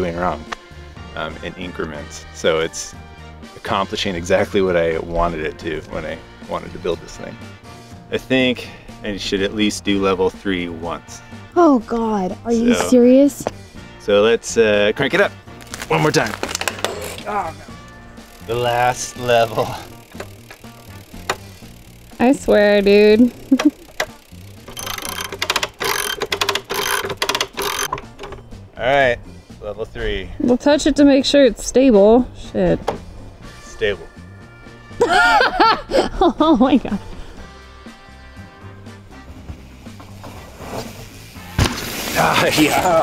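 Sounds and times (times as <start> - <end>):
background music with bass line: 0.0 - 43.0
jack clicking while cranked: 18.4 - 22.3, 23.2 - 28.4
mountain bike landing thud: 39.2 - 43.0.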